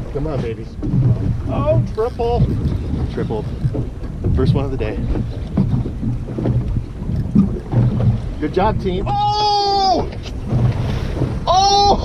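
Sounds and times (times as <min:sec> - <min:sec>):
outboard motor running: 0:00.0 - 0:12.0
wind buffeting microphone: 0:00.0 - 0:12.0.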